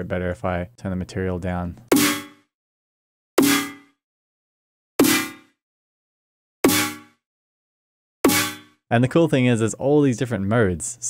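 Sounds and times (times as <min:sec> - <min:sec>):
snare hit with metallic ring: 0:01.9 - 0:02.4, 0:03.4 - 0:03.9, 0:05.0 - 0:05.5, 0:06.6 - 0:07.2, 0:08.3 - 0:08.8.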